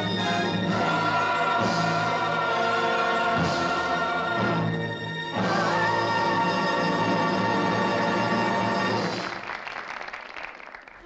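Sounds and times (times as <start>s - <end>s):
choir singing long held notes: 0.0s - 8.8s
orchestral film music: 0.0s - 9.4s.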